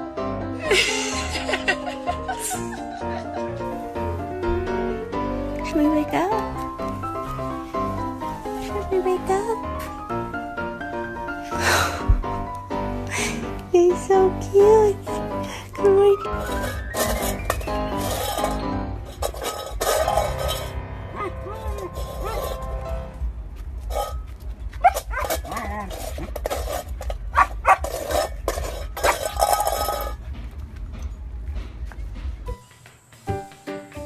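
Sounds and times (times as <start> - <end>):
background music: 0.0 - 34.0.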